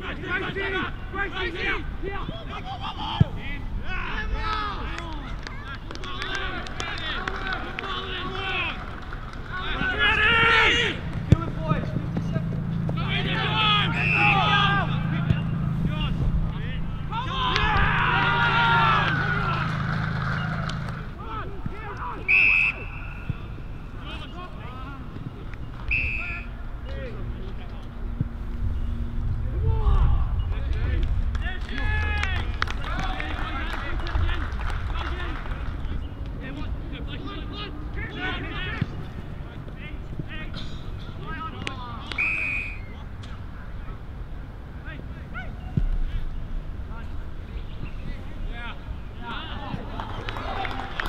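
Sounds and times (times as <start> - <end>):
players shouting: 0.0 - 27.5, 29.5 - 43.1
umpire whistle blasts: 22.3 - 23.3, 25.9 - 26.5, 42.2 - 42.9.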